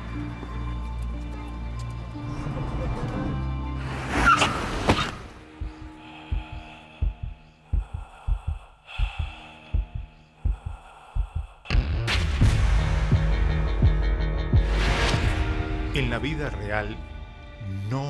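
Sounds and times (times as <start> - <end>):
heartbeat double thuds: 5.5 - 12.1.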